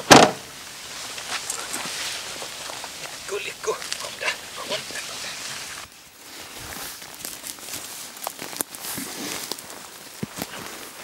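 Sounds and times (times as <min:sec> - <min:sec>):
brush rustling: 0:00.0 - 0:11.0
twigs crackling underfoot: 0:00.0 - 0:11.0.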